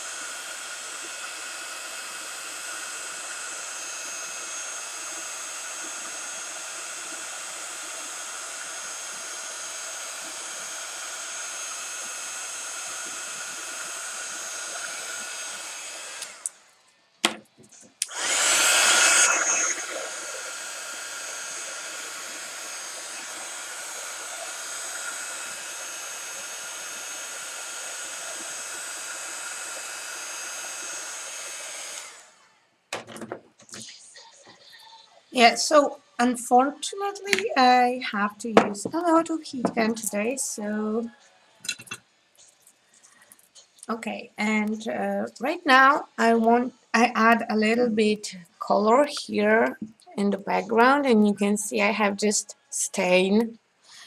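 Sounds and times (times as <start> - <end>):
heat gun blowing air: 0.0 - 16.6, 18.0 - 32.5.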